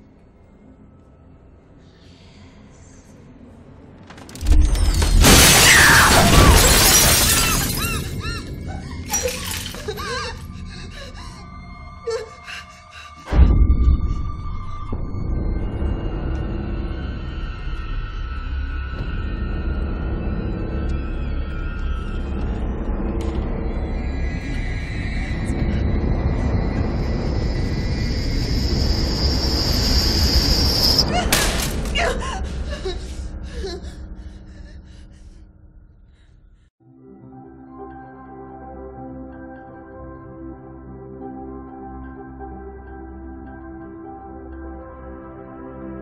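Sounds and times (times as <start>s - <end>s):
eerie horror film score: 0.0s - 46.0s
mirror glass shattering: 4.4s - 8.2s, 9.1s - 10.0s
woman screaming: 5.5s - 6.6s.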